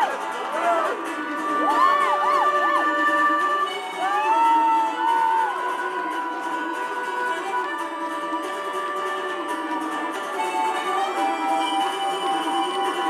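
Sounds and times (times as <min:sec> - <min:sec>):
audience cheering and whooping: 0:00.0 - 0:06.2
live band music: 0:00.0 - 0:13.0.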